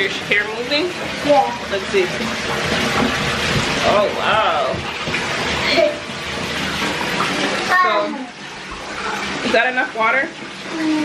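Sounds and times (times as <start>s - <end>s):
water running into bathtub: 0.0s - 11.0s.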